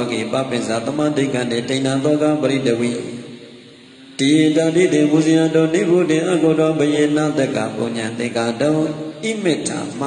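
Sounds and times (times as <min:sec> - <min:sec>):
man chanting verses: 0:00.0 - 0:10.0.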